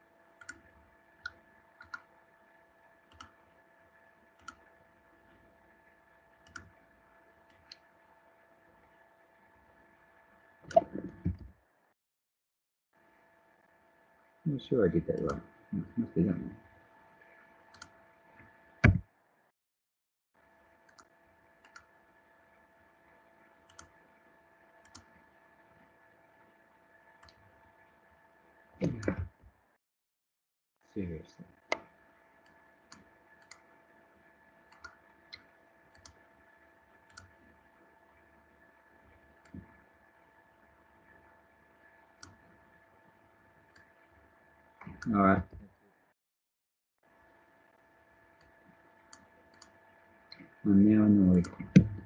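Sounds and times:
computer mouse clicks: 0.4s - 2.1s, 3.1s - 3.4s, 4.4s - 4.7s, 6.4s - 6.8s, 17.7s - 18.0s, 20.9s - 21.9s, 23.7s - 23.9s, 24.8s - 25.1s, 27.2s - 27.4s, 31.7s - 33.7s, 34.7s - 36.2s, 37.1s - 37.4s, 49.1s - 50.5s
faint electrical hum: 13.0s - 19.0s, 30.9s - 45.7s, 47.1s - 52.0s.

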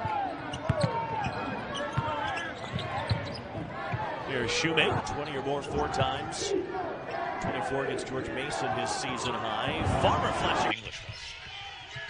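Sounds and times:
sneakers squeaking on floor: 0.5s - 3.5s.

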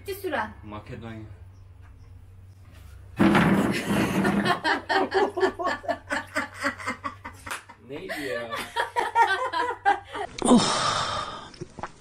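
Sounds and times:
woman laughing hard: 3.8s - 7.4s.

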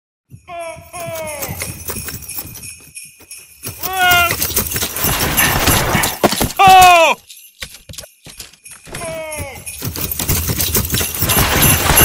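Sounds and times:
sleigh bells jingling: 0.3s - 12.0s.

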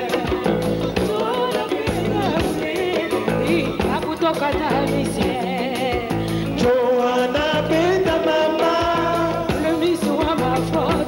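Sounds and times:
bass guitar: 0.0s - 11.0s
drum kit steady beat: 0.0s - 11.0s
electric guitars: 0.0s - 11.0s
person singing: 0.0s - 11.0s.

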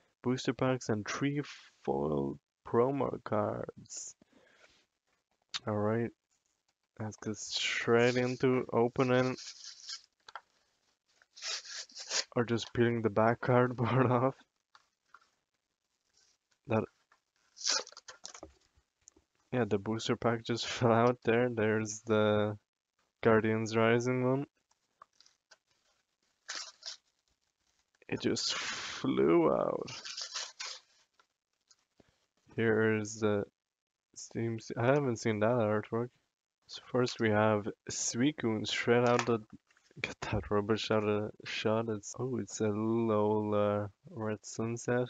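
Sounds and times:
packaging rustling and scraping: 9.0s - 12.4s, 17.2s - 18.6s, 25.0s - 27.2s, 29.9s - 31.2s
cardboard ripping: 11.4s - 12.3s, 17.6s - 18.4s, 30.0s - 30.8s.

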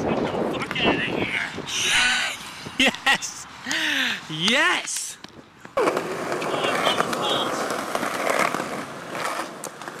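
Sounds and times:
skateboard wheels rolling on concrete: 0.0s - 10.0s
wheels clicking over pavement joints: 4.8s - 10.0s.

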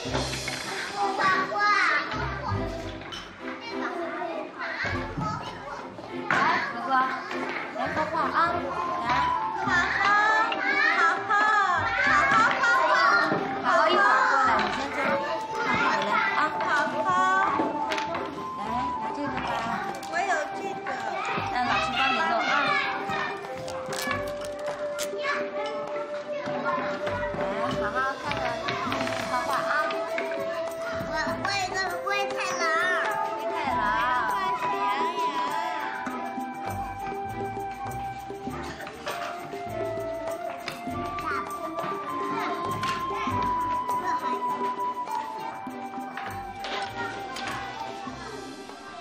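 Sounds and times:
young children chattering: 0.0s - 49.0s.

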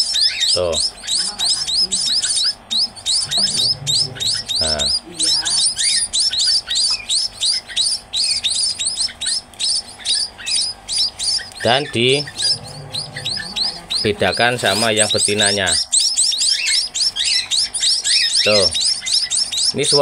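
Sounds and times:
chicks chirping: 0.0s - 20.0s.

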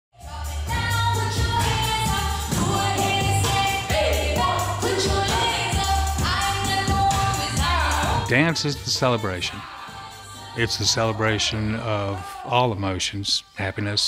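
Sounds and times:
pop song singing: 0.2s - 14.0s.

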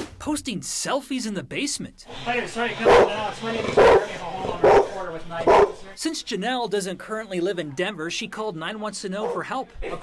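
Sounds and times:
dog barking: 2.8s - 5.8s.

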